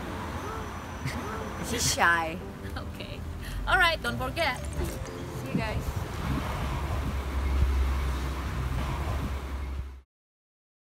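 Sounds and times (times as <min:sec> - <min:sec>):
wind buffeting microphone: 0:04.8 - 0:10.0.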